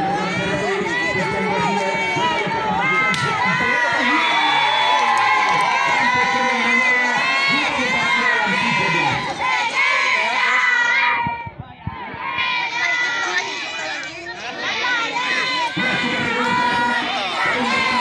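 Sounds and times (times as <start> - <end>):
crowd shouting and cheering: 0.0 - 18.0
children's voices: 12.2 - 18.0.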